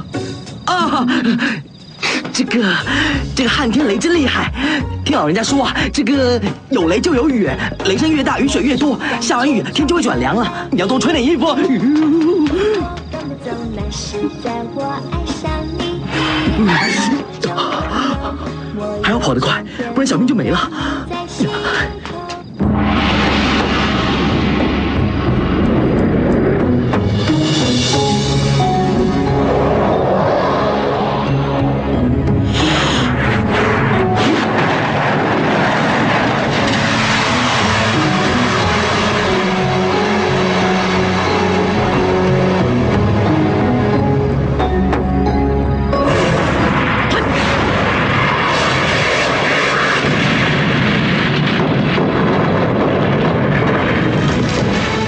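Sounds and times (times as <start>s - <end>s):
loud rumbling roar: 22.6s - 27.2s, 29.2s - 44.0s, 46.0s - 55.0s
rushing whoosh noise: 22.6s - 44.7s
music with held low tones: 37.8s - 46.5s.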